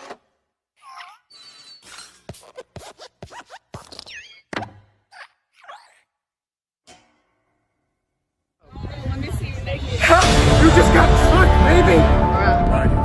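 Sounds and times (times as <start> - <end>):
squeaky gliding creaks: 0.8 - 4.5.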